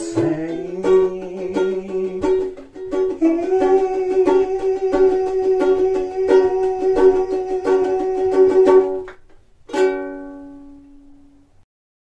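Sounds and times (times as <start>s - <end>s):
ringing ukulele chord: 0.0s - 9.1s, 9.7s - 11.4s
ukulele strumming: 0.0s - 11.5s.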